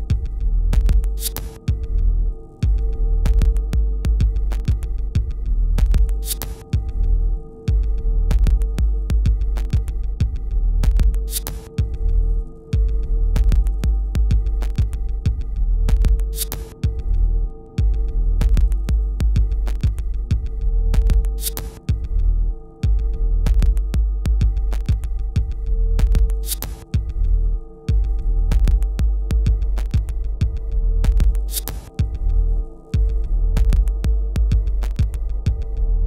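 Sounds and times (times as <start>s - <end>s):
throbbing bass pulse: 0.0s - 1.2s, 1.8s - 16.3s, 16.9s - 21.4s, 22.0s - 36.0s
steady hum-like tone: 0.0s - 36.0s.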